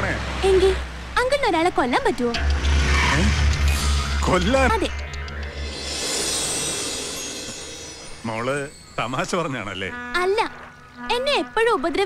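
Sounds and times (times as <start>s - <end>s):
film background music: 2.2s - 11.0s.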